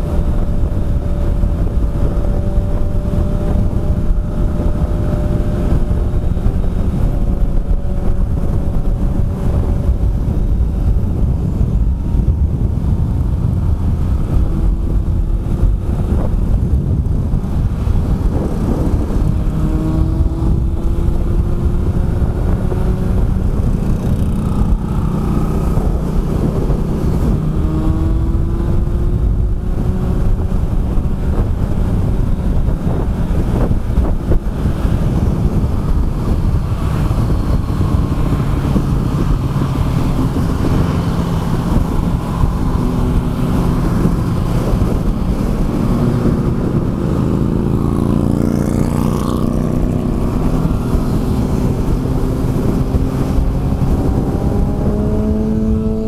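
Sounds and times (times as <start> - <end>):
motorcycle engine running: 0.0 - 56.0
wind rushing on microphone: 0.0 - 56.0.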